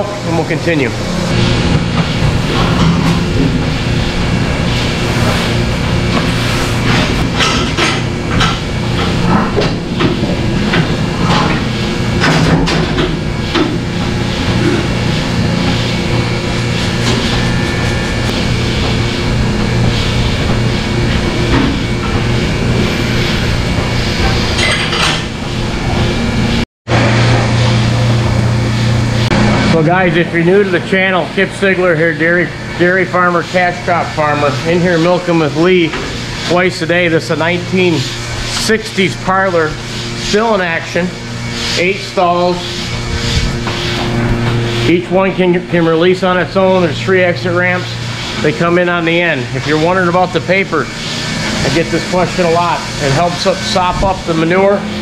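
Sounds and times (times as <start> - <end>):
machinery hum: 0.0 - 55.0.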